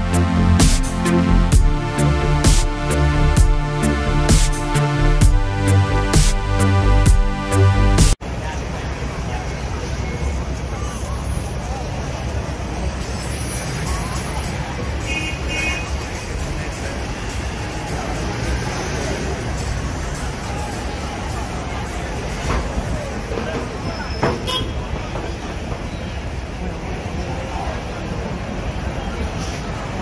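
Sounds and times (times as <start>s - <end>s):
crowd chatter: 0.0s - 30.0s
traffic rumble: 0.0s - 30.0s.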